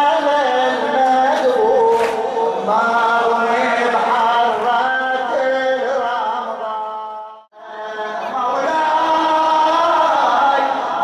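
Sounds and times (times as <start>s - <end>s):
man chanting a lament: 0.0s - 11.0s.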